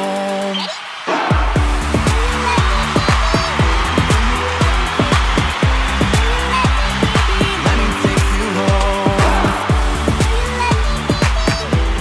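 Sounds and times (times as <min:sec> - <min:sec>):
held synth chords: 0:01.2 - 0:11.2
kick-drum beat: 0:01.2 - 0:12.0
synth bass: 0:01.4 - 0:12.0.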